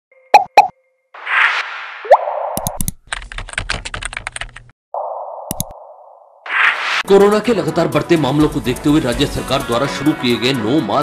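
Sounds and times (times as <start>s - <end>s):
rapid typing-like clicking: 2.6s - 4.7s
whoosh: 5.6s - 7.1s
quick rising swish: 6.4s - 7.1s.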